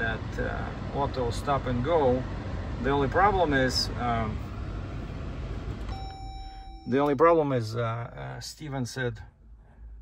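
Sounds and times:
low cabin hum: 0.0 - 10.0
electronic dashboard beep: 5.9 - 7.3.

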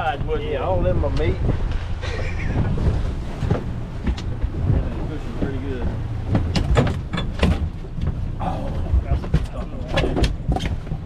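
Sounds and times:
low rumble of boat and sea: 0.0 - 11.0
wind buffeting microphone: 0.0 - 11.0.

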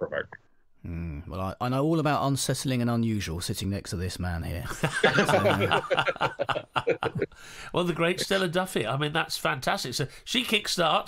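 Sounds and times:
men laughing: 4.7 - 7.4.

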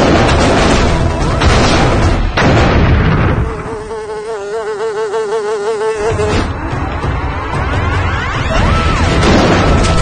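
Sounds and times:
loud blast: 0.0 - 3.4, 8.9 - 10.0.

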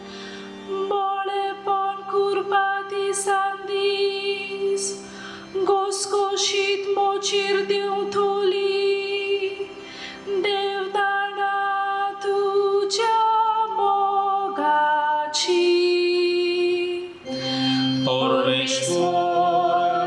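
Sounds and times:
woman singing into a microphone: 0.6 - 17.4.

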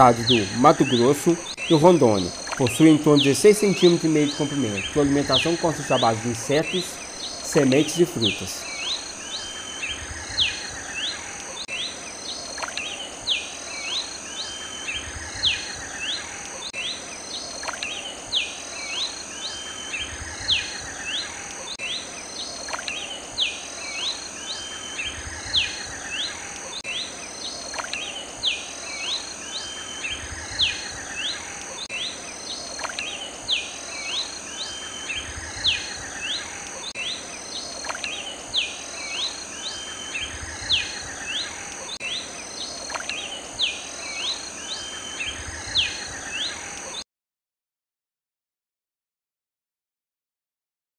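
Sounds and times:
steady high hiss: 0.0 - 47.0.

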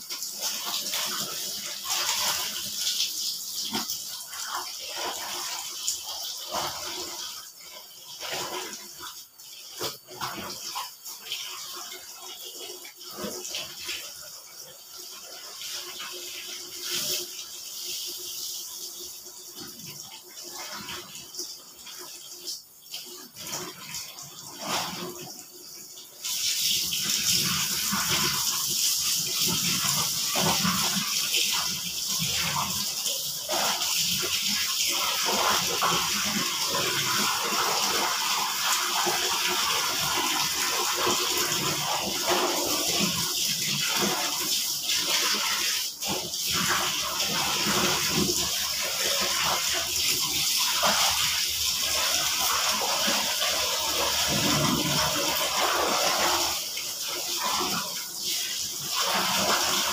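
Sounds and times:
water sloshing in a basin: 0.0 - 17.7
tap water running: 0.0 - 59.9.

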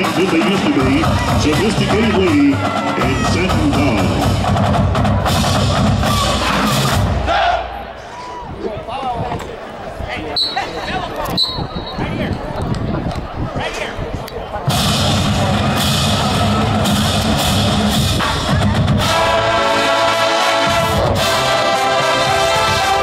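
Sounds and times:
marching band playing: 0.0 - 7.9, 14.6 - 23.0
stadium crowd chatter: 0.0 - 23.0.

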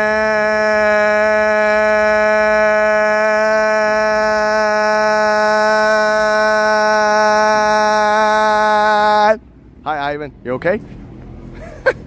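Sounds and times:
man shouting a long note: 0.0 - 9.4.

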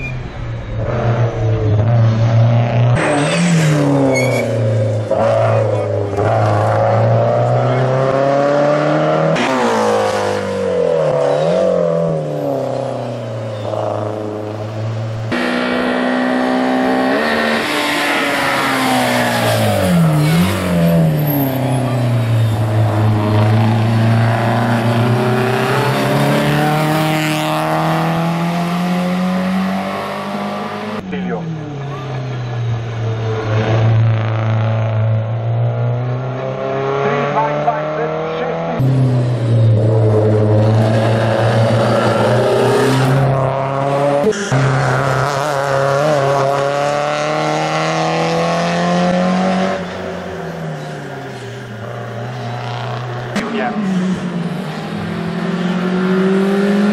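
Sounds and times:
car engine at full throttle: 0.0 - 56.9.

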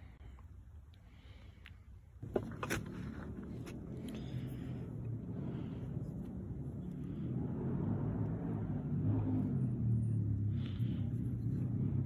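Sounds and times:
low motor rumble with hum: 2.2 - 12.0.

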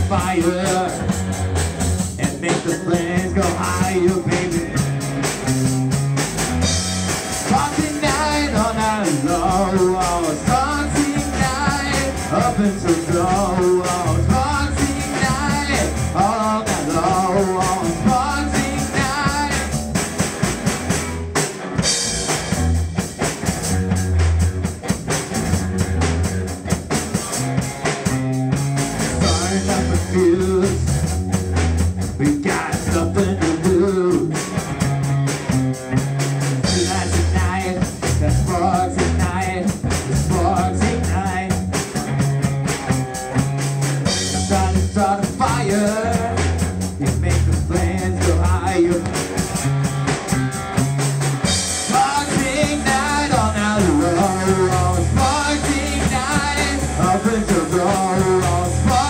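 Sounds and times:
bass guitar: 0.0 - 59.0
drum kit: 0.0 - 59.0
electric guitar: 0.0 - 59.0.

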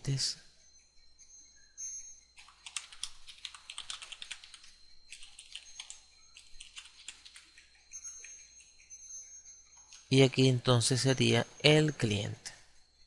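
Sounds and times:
typing on a computer keyboard: 2.4 - 8.3.

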